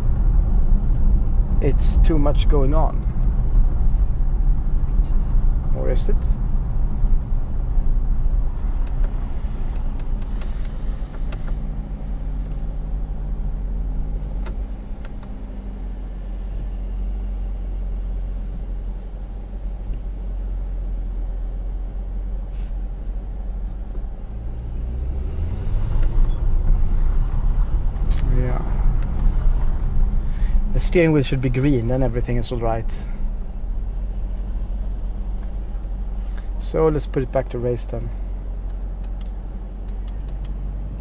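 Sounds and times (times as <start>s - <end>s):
car engine running: 0.0s - 41.0s
road rumble: 0.0s - 41.0s.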